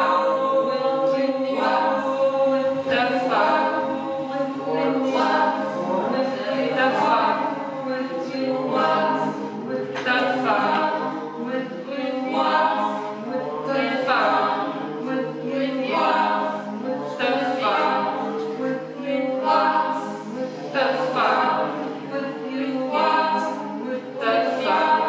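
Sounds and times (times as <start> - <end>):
mixed choir singing: 0.0 - 25.0.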